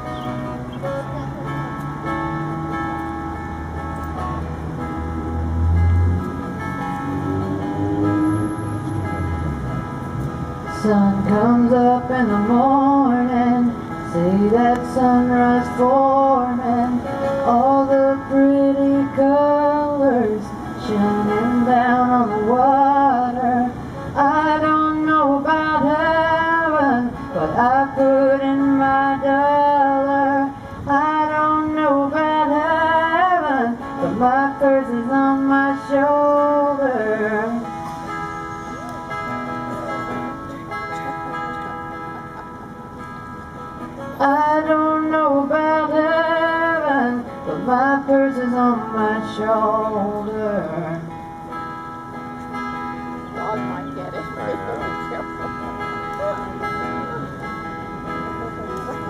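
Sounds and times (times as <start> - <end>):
acoustic guitar playing: 0.0 - 59.0
woman singing: 10.8 - 37.6, 44.2 - 51.0.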